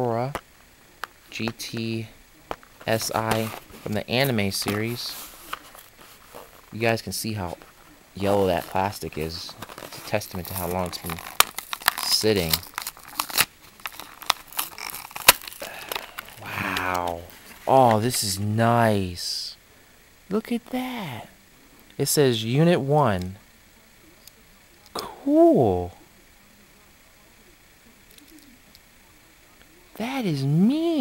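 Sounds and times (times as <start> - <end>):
plastic blister pack crinkling: 1.0 - 18.2.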